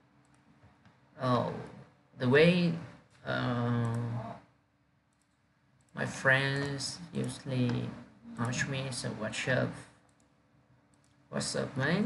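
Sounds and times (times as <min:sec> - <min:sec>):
computer mouse clicks: 0:00.2 - 0:01.0, 0:05.1 - 0:05.9, 0:10.1 - 0:10.3, 0:10.9 - 0:11.2
man talking: 0:01.2 - 0:04.4, 0:06.0 - 0:09.9, 0:11.3 - 0:12.0.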